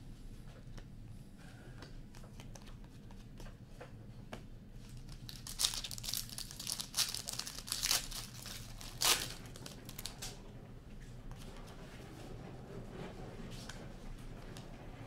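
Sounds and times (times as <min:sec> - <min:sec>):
card pack wrapper crinkling and tearing: 0:04.9 - 0:10.1.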